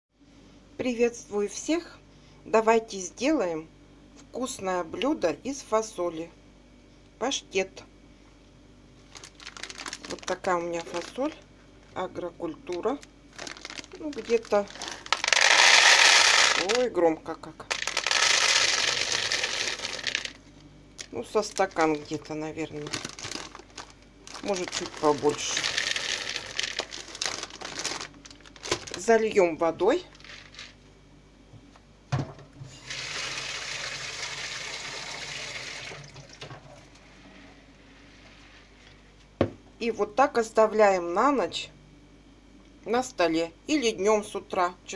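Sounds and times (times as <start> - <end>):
dry beans pouring into plastic bowl: 14.4 - 16.8, 17.7 - 20.4, 24.4 - 28.1
water running from a tap: 32.8 - 36.5.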